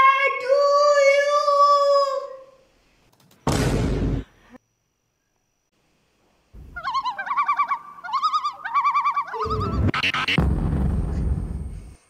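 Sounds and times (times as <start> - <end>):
bird-like warbling whistle: 6.7 - 10.4.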